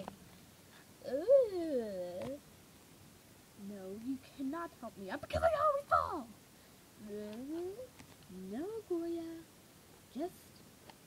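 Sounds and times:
person speaking: 3.6s - 6.4s, 7.0s - 9.5s.

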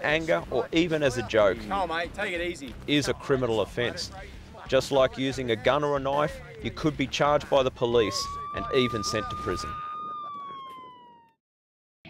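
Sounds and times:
police siren: 7.8s - 11.4s.

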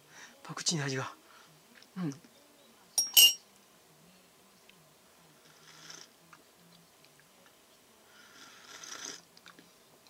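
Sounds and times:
teaspoon clinking against mug: 3.0s - 3.4s.

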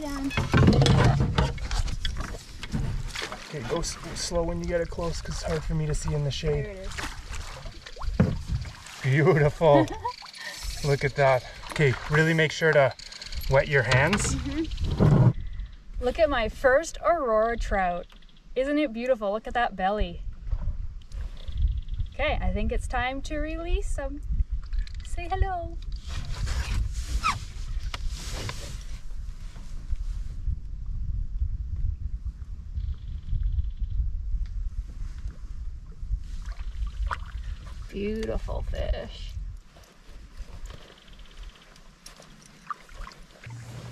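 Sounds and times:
wind rumble on microphone: 0.0s - 12.2s, 12.8s - 42.2s, 42.8s - 43.9s
water splashing and sloshing: 0.0s - 15.4s, 34.9s - 43.9s.

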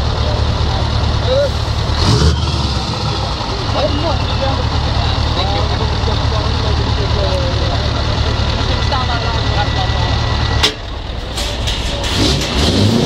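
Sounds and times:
diesel truck engine idling: 0.0s - 12.9s.

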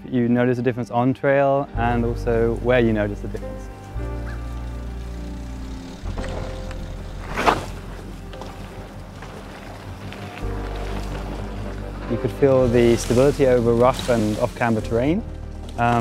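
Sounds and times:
background music with low notes: 0.0s - 16.0s.

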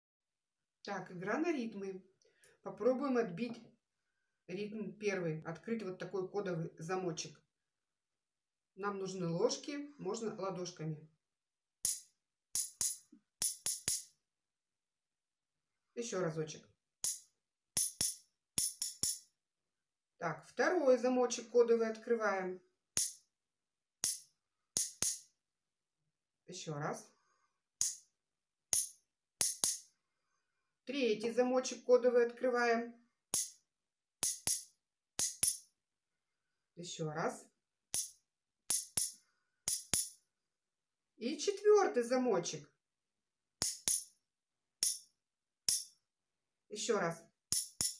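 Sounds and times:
metal spoons tapping a rhythm: 11.8s - 14.1s, 17.8s - 19.2s, 24.0s - 24.2s, 24.8s - 25.2s, 28.7s - 29.8s, 33.4s - 33.6s, 34.2s - 35.6s, 38.0s - 40.2s, 43.6s - 44.1s, 44.8s - 45.0s, 47.5s - 47.9s.

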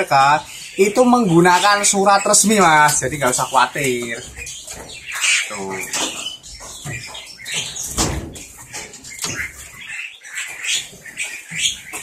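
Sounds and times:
birds chirping and calling: 0.0s - 12.0s.

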